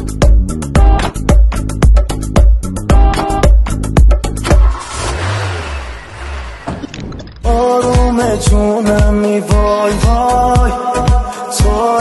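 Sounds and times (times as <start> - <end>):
car engine starting: 3.0 - 7.7.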